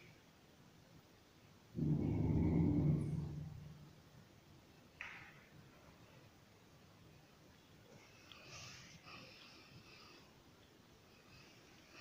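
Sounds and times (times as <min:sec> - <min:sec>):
dog growling low: 0:01.8 - 0:03.8.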